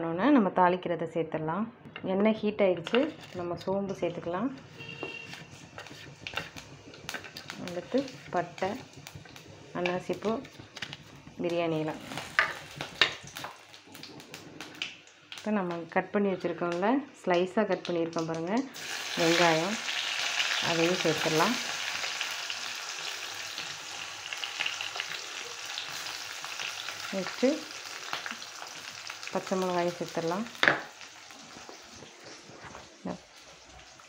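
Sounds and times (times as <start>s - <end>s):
vegetables sizzling in hot oil: 4.7s - 15.9s, 18.1s - 34.0s
seeds crackling in oil: 17.8s - 34.0s.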